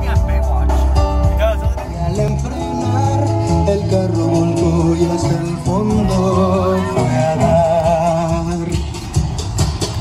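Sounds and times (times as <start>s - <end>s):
heavy bass-driven music: 0.0s - 10.0s
music with guitar: 0.0s - 10.0s.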